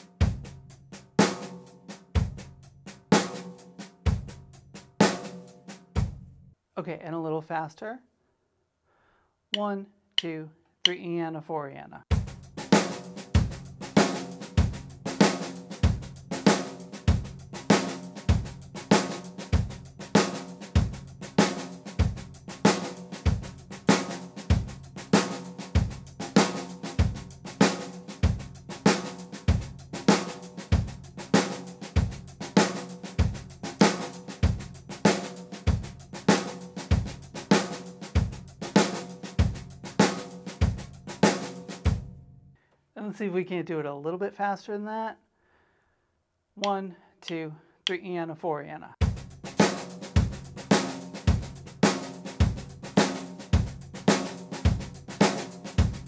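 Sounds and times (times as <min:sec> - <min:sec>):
bass drum: 0:00.0 - 0:05.3, 0:05.9 - 0:06.4, 0:12.1 - 0:42.2, 0:49.0 - 0:56.0
snare drum accents: 0:12.1 - 0:41.9, 0:49.0 - 0:56.0.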